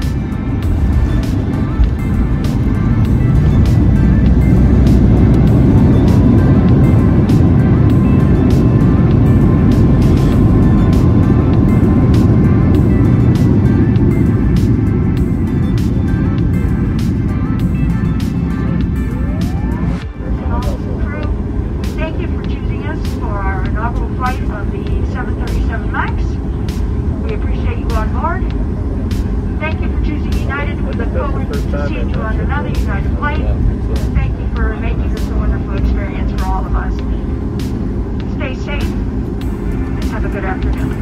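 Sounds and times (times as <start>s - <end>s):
airplane cabin rumble: 0.0s - 41.0s.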